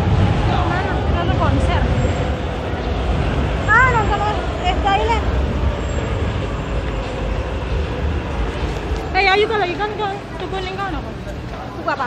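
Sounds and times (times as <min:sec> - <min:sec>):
busy street rumble: 0:00.0 - 0:12.0.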